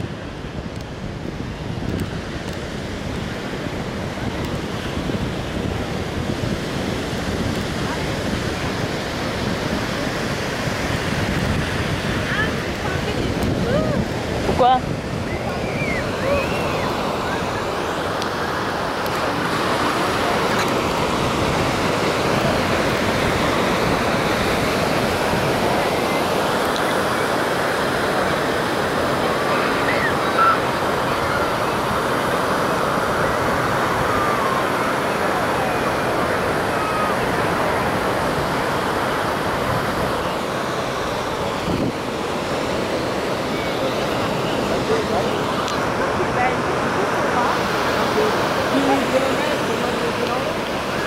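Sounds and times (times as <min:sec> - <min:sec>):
surf breaking on beach: 0:00.0 - 0:51.0
wind buffeting microphone: 0:00.0 - 0:51.0.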